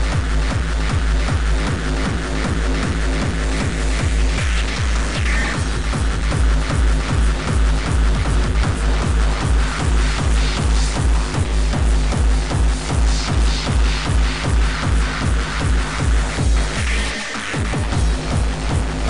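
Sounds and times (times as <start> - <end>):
dense noisy synth: 0.0 - 19.0
heavy fast kick drum: 0.0 - 19.0.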